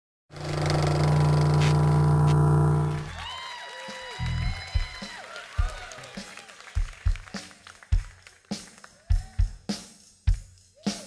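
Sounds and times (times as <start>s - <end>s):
rock band chord ringing: 0.4s - 3.1s
faint tones sliding in pitch: 0.4s - 3.2s.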